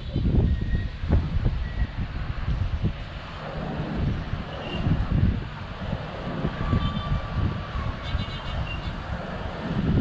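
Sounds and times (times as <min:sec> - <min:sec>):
faint traffic noise: 0:00.0 - 0:10.0
wind buffeting microphone: 0:00.0 - 0:10.0.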